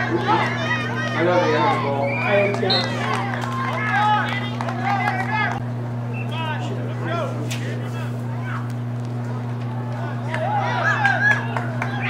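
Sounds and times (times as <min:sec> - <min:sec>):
people calling out: 0:00.0 - 0:08.8, 0:09.7 - 0:12.0
steady low hum: 0:00.0 - 0:12.0.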